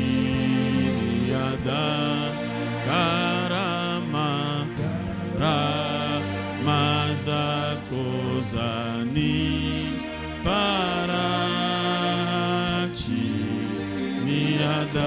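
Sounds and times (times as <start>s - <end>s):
man singing into a microphone: 0.0s - 15.0s
sustained instrumental chords and bass: 0.0s - 15.0s.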